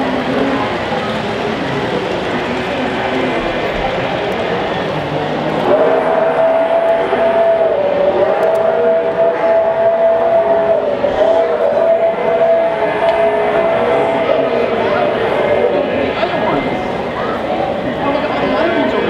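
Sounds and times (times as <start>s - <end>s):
crowd chatter: 0.0s - 19.0s
model train whining: 0.0s - 19.0s.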